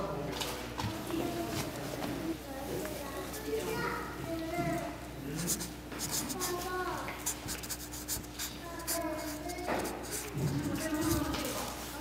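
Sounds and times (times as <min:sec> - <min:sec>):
background voices talking: 0:00.0 - 0:12.0
marker scratching on card: 0:05.3 - 0:11.4.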